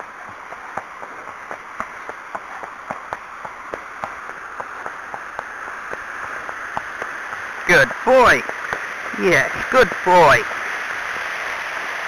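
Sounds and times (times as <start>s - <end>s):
horse hooves clopping on wet road: 0.0s - 12.0s
running water rushing: 0.0s - 12.0s.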